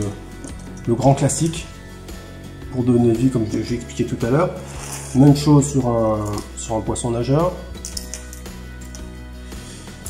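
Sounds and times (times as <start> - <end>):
quiet background music chord: 0.0 - 10.0.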